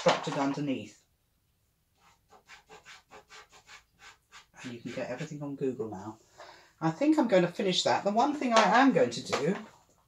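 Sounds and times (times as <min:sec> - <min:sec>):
pastel scratching on paper: 0:02.0 - 0:05.3.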